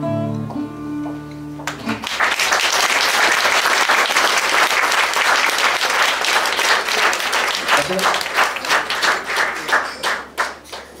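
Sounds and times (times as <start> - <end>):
audience applause: 1.7 - 11.0.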